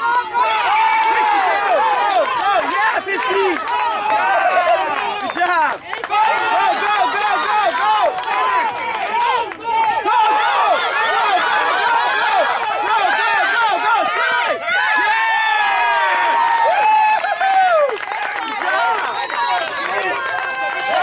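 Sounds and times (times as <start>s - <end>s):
crowd yelling and shouting: 0.0s - 21.0s.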